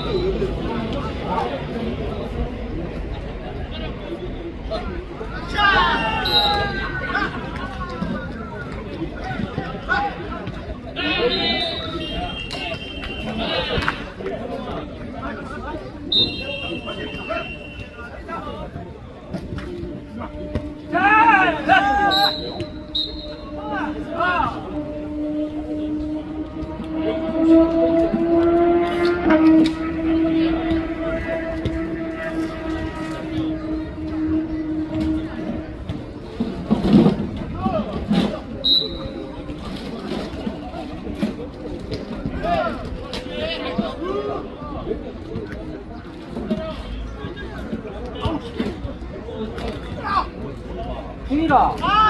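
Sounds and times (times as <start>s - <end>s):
players shouting: 4.7s - 14.8s, 19.9s - 27.2s, 29.6s - 36.0s
steady low drone: 22.7s - 36.6s.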